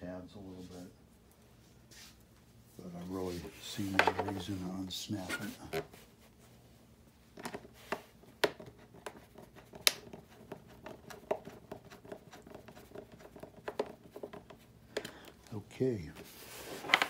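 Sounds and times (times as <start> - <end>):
hands clicking and tapping plastic: 7.4 - 15.5.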